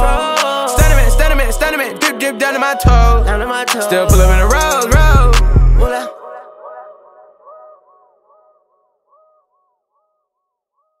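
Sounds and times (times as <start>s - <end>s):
melodic loop of short notes: 0.0s - 5.9s.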